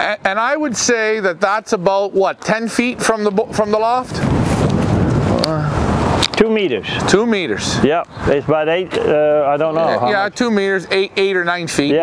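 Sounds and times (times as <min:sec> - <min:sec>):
strong wind on microphone: 0:02.7 - 0:10.3.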